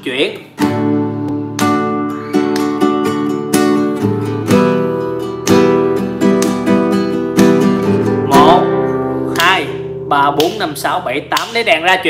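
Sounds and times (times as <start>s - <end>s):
classical guitar strumming: 0.3s - 11.5s.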